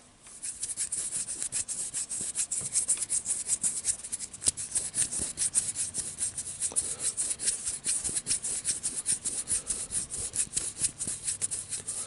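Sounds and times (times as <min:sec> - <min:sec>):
fingertips rubbing scratchily: 0:00.4 - 0:12.0.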